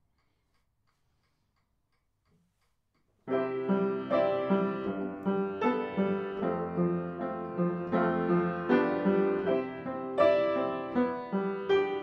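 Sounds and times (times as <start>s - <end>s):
piano playing repeated chords: 3.3s - 12.0s.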